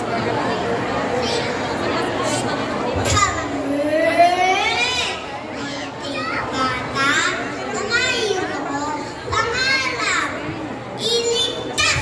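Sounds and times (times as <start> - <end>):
boy speaking over loudspeakers: 0.0 - 12.0.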